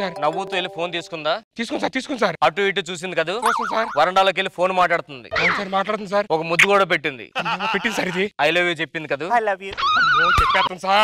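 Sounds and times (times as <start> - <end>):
person talking: 0.0 - 1.9.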